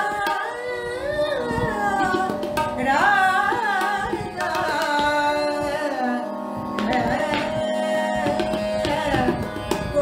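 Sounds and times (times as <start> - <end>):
tabla strokes: 0.0 - 6.0, 6.6 - 10.0
woman singing: 0.0 - 10.0.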